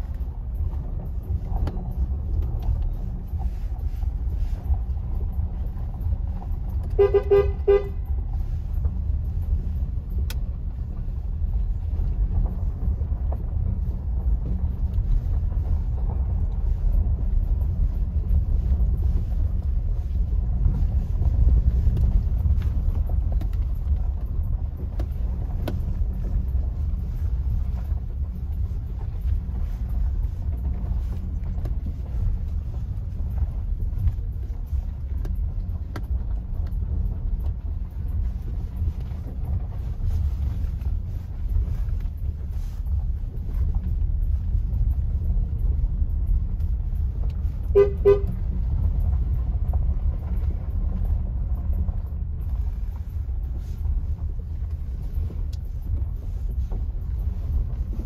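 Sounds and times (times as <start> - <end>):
vehicle engine and tyres rumbling: 0.0 - 58.0.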